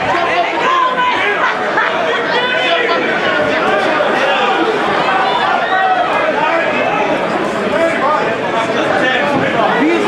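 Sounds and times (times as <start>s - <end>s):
crowd talking and shouting: 0.0s - 10.0s.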